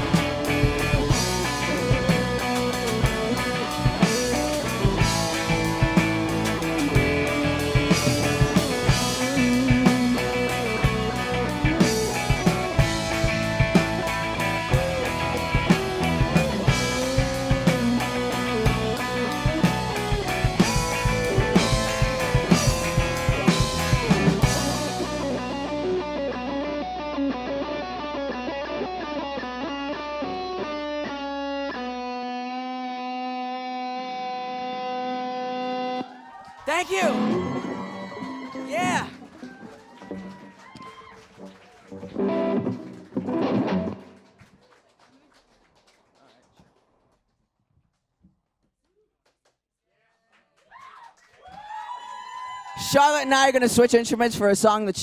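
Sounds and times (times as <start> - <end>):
drum kit: 0.0 - 26.1, 36.7 - 39.9
bass guitar: 0.0 - 36.0, 36.7 - 40.5, 42.0 - 44.2
electric guitar lead line: 0.0 - 36.0.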